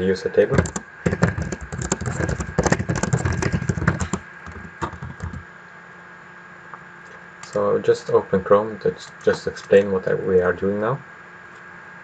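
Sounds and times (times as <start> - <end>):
computer keyboard typing: 0.6 - 5.4.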